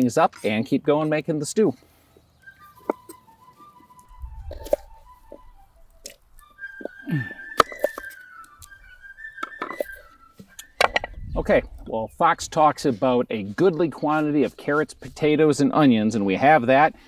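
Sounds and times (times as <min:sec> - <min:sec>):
fife melody: 0:02.4 - 0:11.7.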